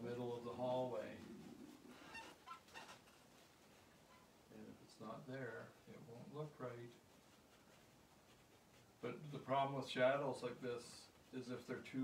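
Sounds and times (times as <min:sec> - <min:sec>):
man's voice: 0:00.0 - 0:01.3, 0:09.0 - 0:12.0.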